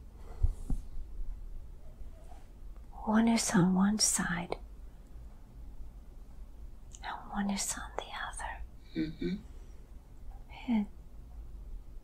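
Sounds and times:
woman whispering: 3.0 - 4.6, 7.0 - 8.7, 10.5 - 10.9.

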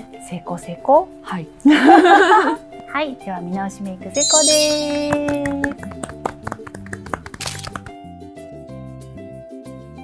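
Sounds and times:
light background music: 0.0 - 9.6
people clapping hands: 4.8 - 8.1.

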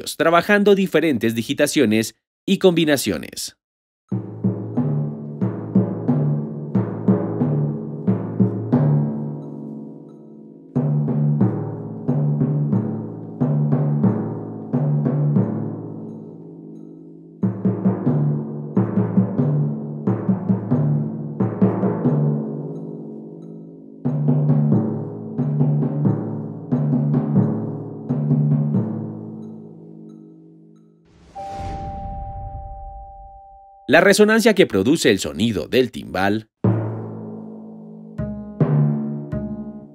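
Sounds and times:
timpani struck with mallets: 4.1 - 30.4, 31.2 - 33.9
short whoosh: 31.1 - 33.9
two-note chime: 31.4 - 33.9.

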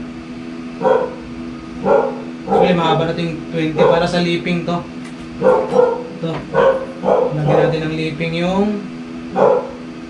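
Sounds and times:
steady background hum: 0.0 - 10.0
dog barking: 0.8 - 2.9, 3.8 - 4.2, 5.4 - 7.9, 9.3 - 9.9.

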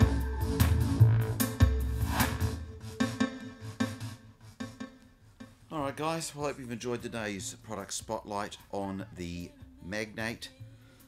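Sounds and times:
music with heavy bass and beat: 0.0 - 5.7.

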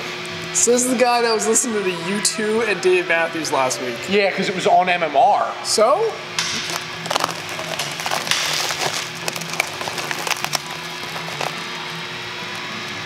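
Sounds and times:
plastic shrink wrap crinkling: 6.4 - 13.0.

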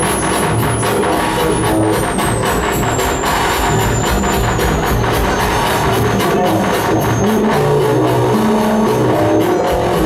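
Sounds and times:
pulsing bass: 0.0 - 10.0
pulsing synthesizer beat: 0.0 - 10.0.

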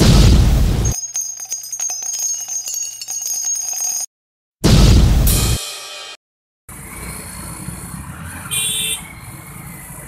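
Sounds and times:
small bells jingling: 0.8 - 4.1.

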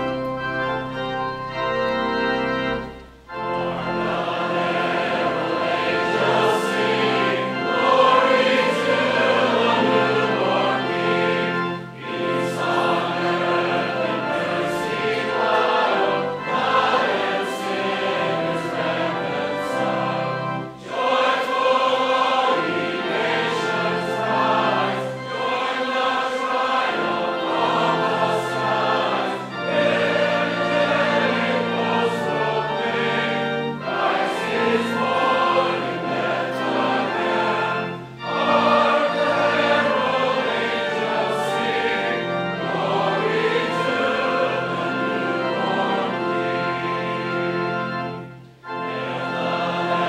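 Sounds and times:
congregation singing a hymn: 0.0 - 50.0
steady musical accompaniment: 0.0 - 50.0.

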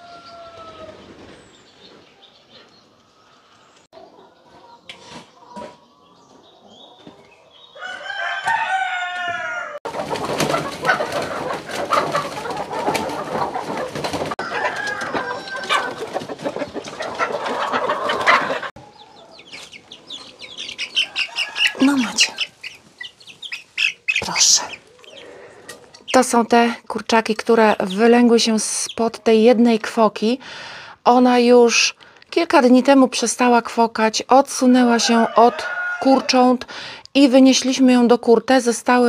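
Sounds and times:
rooster crowing: 0.0 - 1.0, 7.8 - 9.8, 14.4 - 16.1, 20.9 - 22.1, 35.0 - 36.3
chicks peeping: 0.0 - 29.5
loud rustling and scuffling: 9.9 - 18.7.

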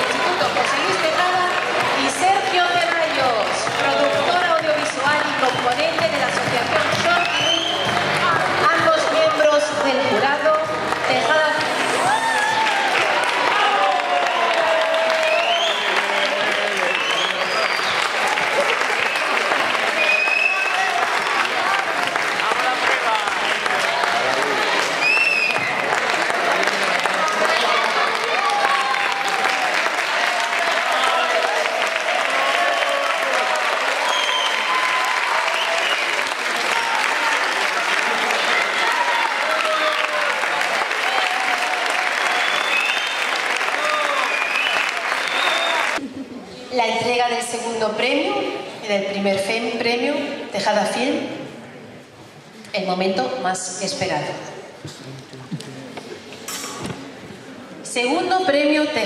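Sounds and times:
audience applauding: 0.0 - 46.0
voices calling and cheering: 0.0 - 47.2.

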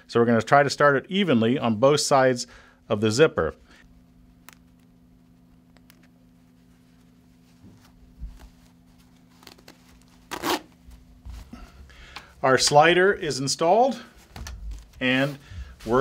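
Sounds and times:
zipper clicks and rustles: 9.2 - 10.8
zipper being zipped: 9.4 - 10.8.

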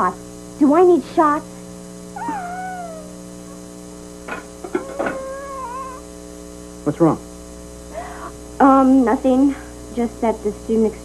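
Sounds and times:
steady low hum: 0.0 - 11.0
wavering animal cries: 2.2 - 3.7, 4.7 - 6.1.

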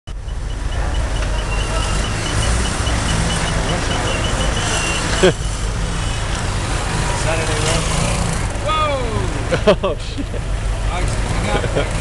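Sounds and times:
road traffic noise: 0.0 - 12.0
vehicle engine running: 0.1 - 12.0.

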